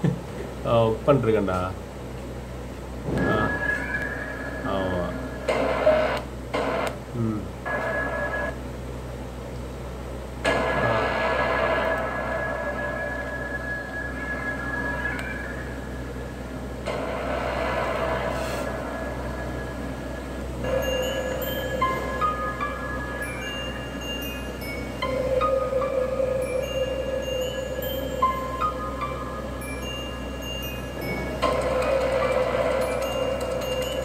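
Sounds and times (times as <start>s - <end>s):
man speaking: 7.2s - 7.6s.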